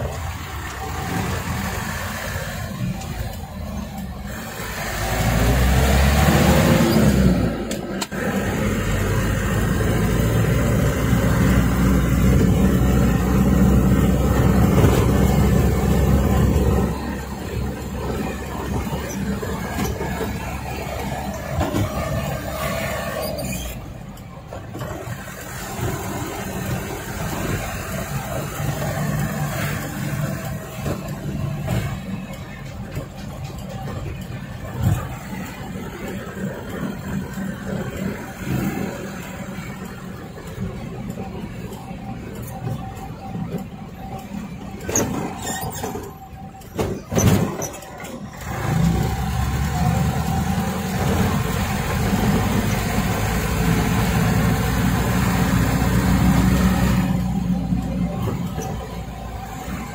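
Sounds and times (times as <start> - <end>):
truck engine from inside cab: 0.0 - 59.9.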